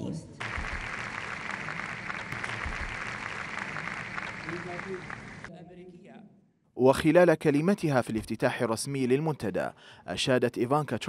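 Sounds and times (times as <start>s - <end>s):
large audience applauding: 0.4s - 5.5s.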